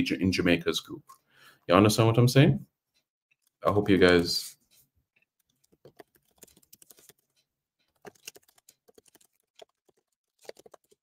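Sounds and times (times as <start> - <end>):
typing on computer keyboard: 5.3 - 11.0.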